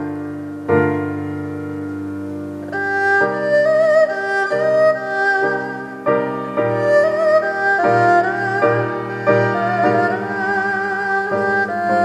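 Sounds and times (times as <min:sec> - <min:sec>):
piano chords: 0:00.0 - 0:12.0
erhu melody with vibrato: 0:02.6 - 0:12.0.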